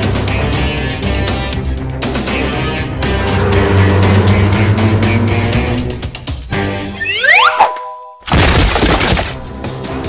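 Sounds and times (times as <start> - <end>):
background music: 0.0 - 10.0
rising whistling glides: 2.1 - 7.9
crash of breaking bricks: 8.3 - 9.5.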